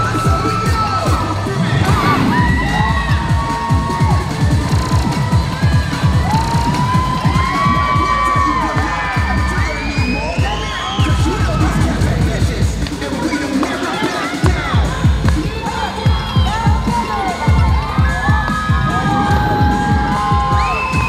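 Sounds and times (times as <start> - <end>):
children shouting and whooping: 0.0 - 12.2, 13.0 - 21.0
crowd cheering: 0.0 - 21.0
fast dance music beat: 0.0 - 21.0.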